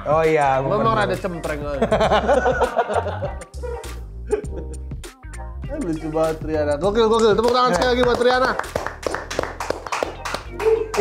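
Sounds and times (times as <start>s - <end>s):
people clapping: 7.3s - 11.0s.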